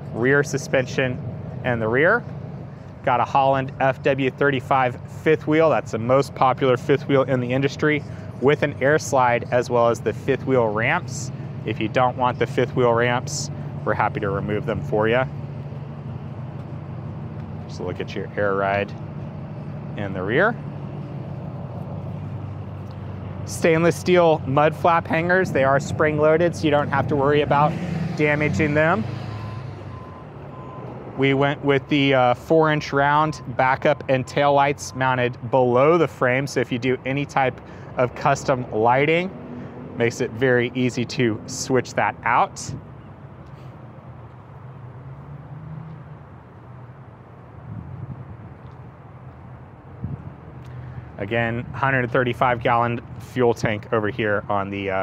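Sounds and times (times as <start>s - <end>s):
outdoor background noise: 0.0s - 55.0s
vehicle engine idling: 0.0s - 55.0s.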